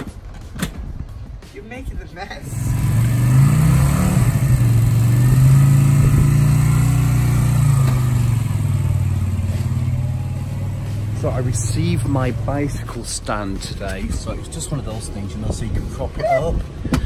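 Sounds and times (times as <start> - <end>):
motorcycle engine revving: 2.4 - 14.1
motorcycle riding off: 2.4 - 15.1.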